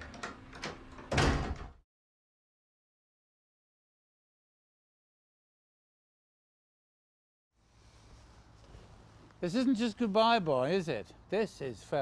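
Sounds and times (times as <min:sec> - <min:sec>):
door shutting with thud: 0:00.0 - 0:01.8.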